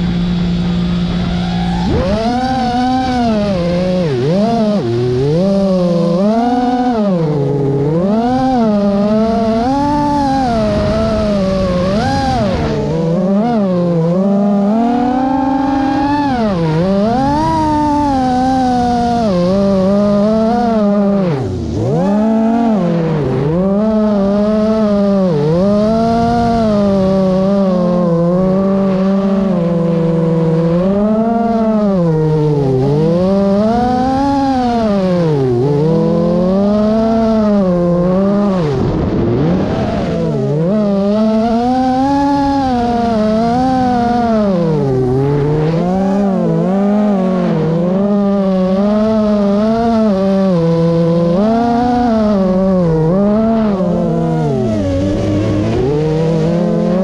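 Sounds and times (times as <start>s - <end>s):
drone propellers whining: 0.0s - 57.0s.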